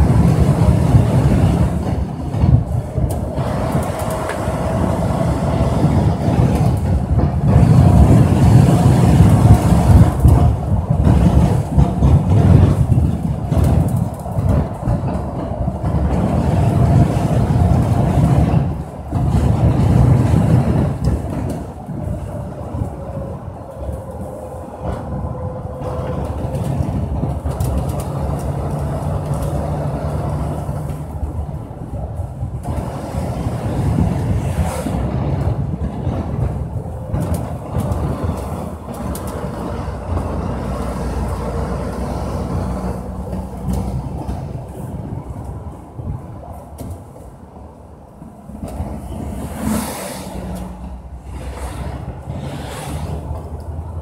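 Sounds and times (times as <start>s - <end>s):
wind and road noise rumble: 0.0s - 54.0s.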